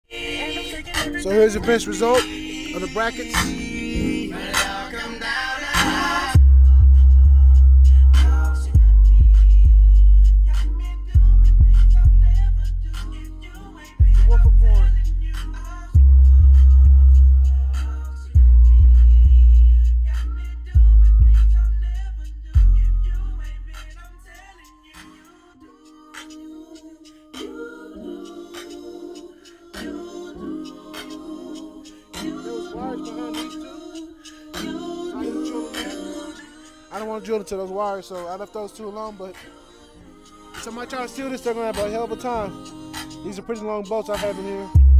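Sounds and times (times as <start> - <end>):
vocals over music: 0.0 - 44.9
hip hop music through subwoofer: 0.1 - 44.9
very deep bass notes: 6.4 - 13.1, 14.0 - 24.1.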